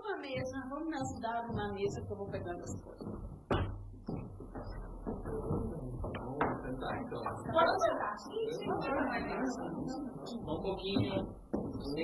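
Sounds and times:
low room noise: 0.0s - 12.0s
soft knock: 0.3s - 7.9s, 10.4s - 12.0s
sharp knock: 0.5s - 7.7s.

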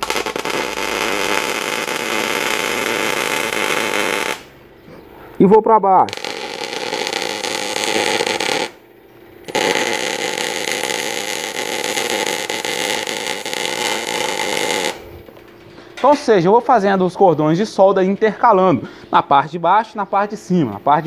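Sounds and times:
electric arc welding: 0.0s - 4.5s, 6.0s - 8.8s, 9.4s - 15.2s.

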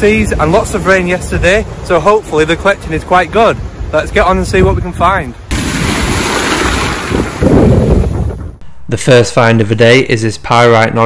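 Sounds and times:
wind buffeting microphone: 0.0s - 8.6s
sea surf washing ashore: 5.5s - 8.4s.

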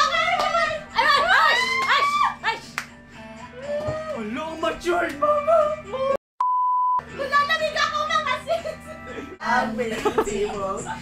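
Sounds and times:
censor beep: 6.4s - 7.0s.

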